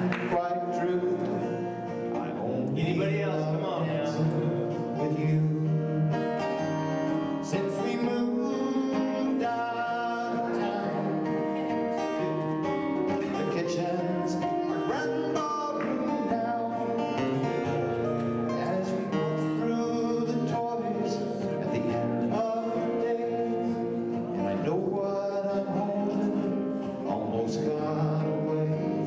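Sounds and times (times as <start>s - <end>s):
acoustic guitars playing country waltz: 0.0s - 29.0s
person singing: 0.0s - 29.0s.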